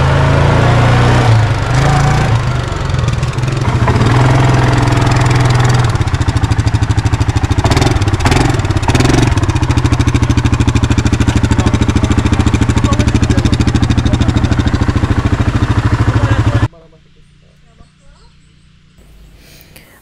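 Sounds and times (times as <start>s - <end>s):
quad bike engine running: 0.0s - 19.3s.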